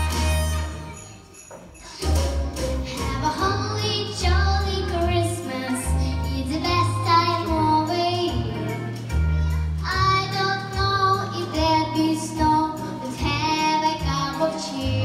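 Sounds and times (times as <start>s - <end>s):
bass line: 0.0s - 1.0s
instrumental accompaniment: 0.0s - 15.0s
girl singing into microphone: 3.1s - 9.0s, 9.8s - 15.0s.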